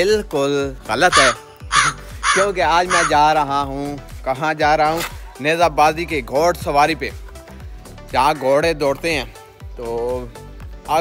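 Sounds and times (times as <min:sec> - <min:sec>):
background music: 0:00.0 - 0:11.0
man speaking: 0:00.9 - 0:01.4, 0:02.3 - 0:03.7.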